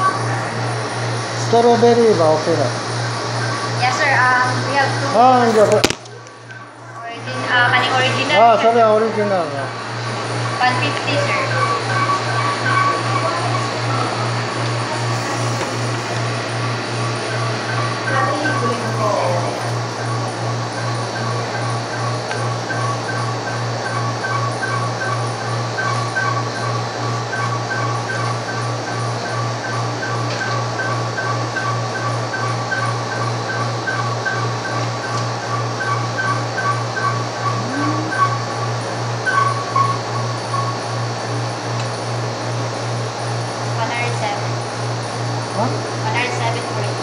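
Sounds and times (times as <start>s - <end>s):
steady low hum: 0.0s - 47.0s
high pulsing pattern: 30.8s - 40.6s.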